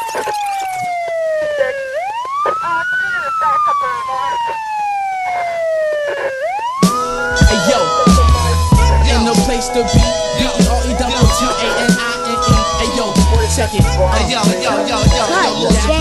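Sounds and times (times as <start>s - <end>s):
wailing siren: 0.0s - 16.0s
hip hop beat with heavy bass: 5.2s - 16.0s.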